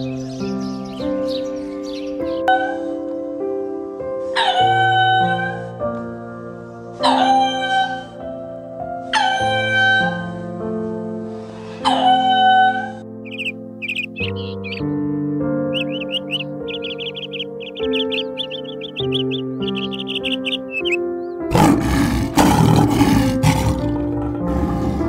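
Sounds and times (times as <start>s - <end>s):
bird chirping: 0.0s - 2.8s, 13.2s - 25.0s
gentle piano music: 0.0s - 25.0s
lion roaring: 21.5s - 25.0s.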